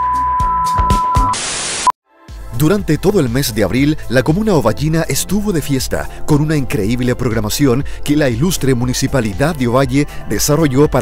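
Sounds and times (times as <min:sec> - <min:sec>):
high electronic beep: 0:00.0 - 0:01.9
static hiss burst: 0:01.2 - 0:01.9.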